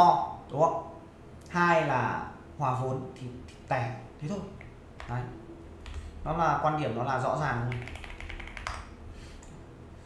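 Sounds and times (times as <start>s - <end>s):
faint low hum: 0.0s - 10.0s
computer keyboard typing: 7.6s - 8.9s.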